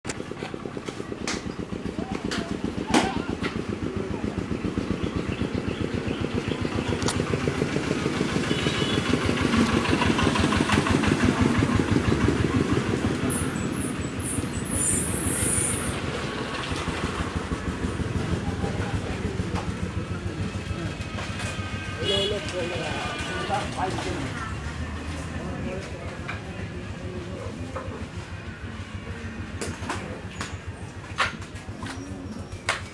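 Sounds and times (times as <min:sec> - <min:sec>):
engine running steadily: 0:00.1 - 0:32.9.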